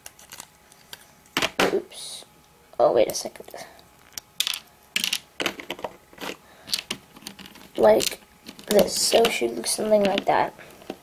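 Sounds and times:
plastic bricks clicking and clattering: 10.0s - 10.4s.

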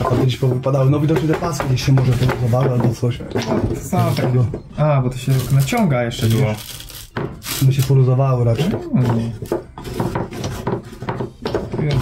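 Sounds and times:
wooden chess pieces knocking: 0.0s - 4.7s, 8.5s - 12.0s.

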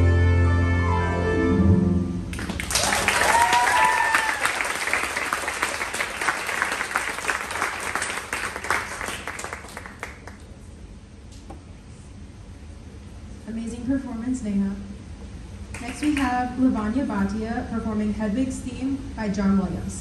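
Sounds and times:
audience applause: 2.3s - 10.5s
cheering whoops: 2.6s - 5.0s.

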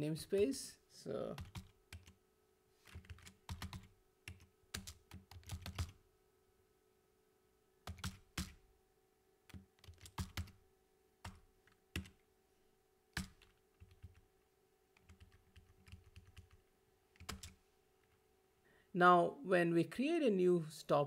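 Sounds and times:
computer keyboard typing: 1.4s - 2.2s, 2.8s - 6.0s, 7.8s - 8.6s, 9.5s - 10.6s, 11.2s - 12.2s, 13.1s - 18.2s.

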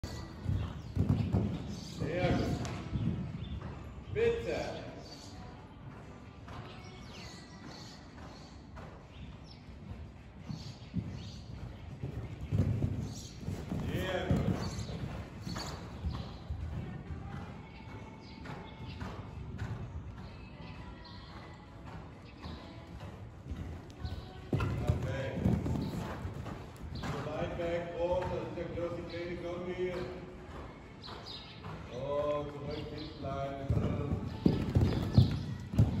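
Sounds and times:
horse hoofbeats on sand: 0.0s - 5.2s, 5.8s - 36.0s.

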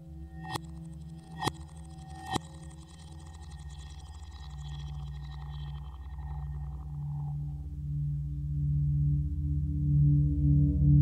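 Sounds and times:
low humming electronic drone: 0.0s - 11.0s
fast low pulsing: 0.4s - 7.8s.

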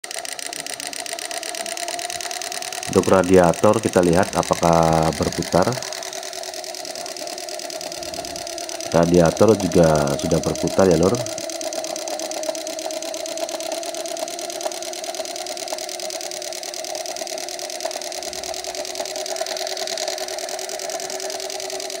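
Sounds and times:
model engine whining and ticking: 0.0s - 22.0s
small electric motor whirring: 0.0s - 22.0s.

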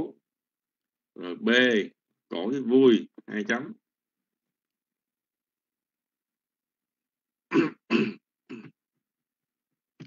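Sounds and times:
person clearing throat: 7.5s - 8.8s.

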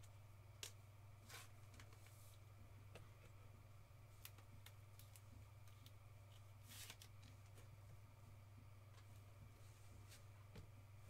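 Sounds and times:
low electrical hum: 0.0s - 11.0s
card sliding rustle: 6.6s - 7.1s.

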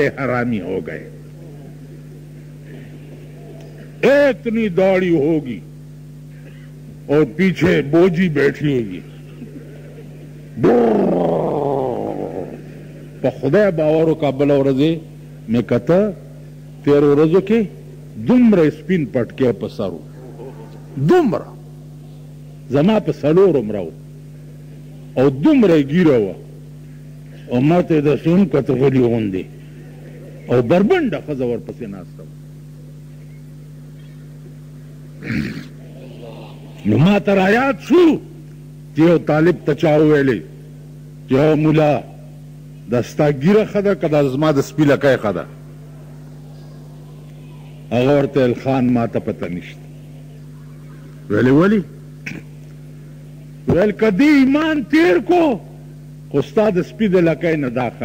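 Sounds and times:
man preaching: 0.0s - 1.2s, 3.8s - 5.7s, 7.0s - 9.2s, 10.6s - 21.7s, 22.7s - 24.0s, 25.2s - 26.5s, 27.4s - 29.6s, 30.3s - 32.4s, 35.7s - 40.6s, 41.3s - 42.3s, 42.9s - 49.9s, 51.3s - 52.6s, 53.6s - 55.7s, 56.3s - 58.0s
steady electrical hum: 0.0s - 58.0s
man crying out: 10.6s - 12.6s, 35.2s - 37.2s.

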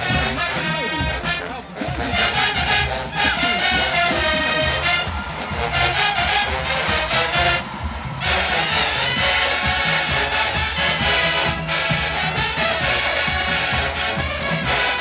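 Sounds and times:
marching band playing: 0.0s - 15.0s.

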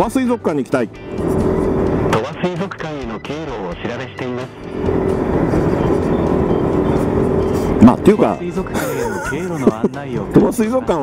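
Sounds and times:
motorcycle engine cruising: 0.9s - 2.2s, 4.4s - 8.6s
wind and road noise: 0.9s - 2.2s, 4.5s - 9.8s.

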